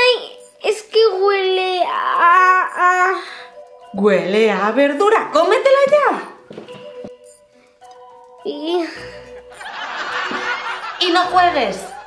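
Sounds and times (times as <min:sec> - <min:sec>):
quiet background music: 0:00.0 - 0:12.0
laugh track: 0:08.8 - 0:12.0.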